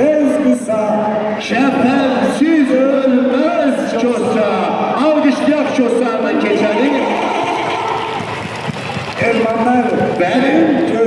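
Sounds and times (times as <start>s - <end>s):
audience applauding: 6.4s - 10.6s.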